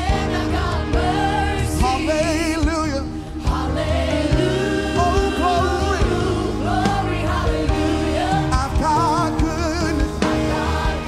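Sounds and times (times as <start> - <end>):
choir singing in harmony: 0.0 - 11.0
live band with keyboards and drums: 0.0 - 11.0.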